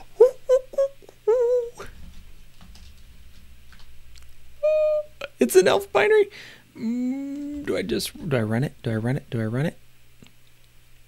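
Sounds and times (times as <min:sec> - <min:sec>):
wavering hum-like vocal sound: 0:00.0 - 0:01.9, 0:06.8 - 0:08.3.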